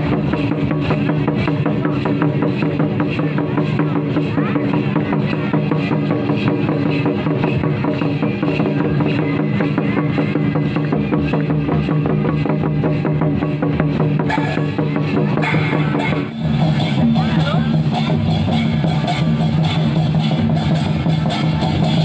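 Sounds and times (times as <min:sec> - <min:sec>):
barrel drums: 0:00.0 - 0:22.0
kettle drum beaten with sticks: 0:00.0 - 0:22.0.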